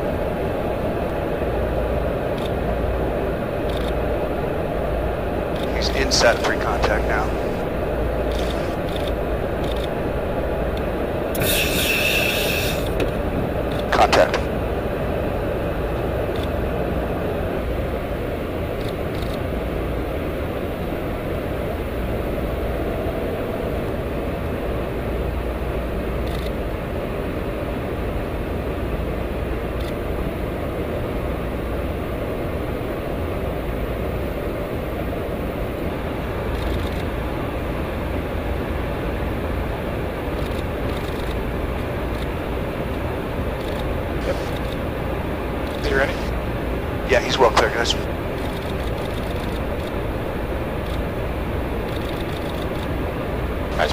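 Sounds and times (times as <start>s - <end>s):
engine and airflow rush: 0.0s - 53.9s
sharp clicks: 8.3s - 9.9s
burst of hiss: 11.4s - 13.0s.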